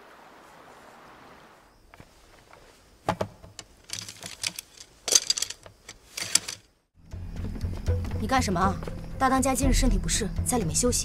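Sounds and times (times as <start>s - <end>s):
bamboo slips clicking and rattling: 2.0s - 6.7s.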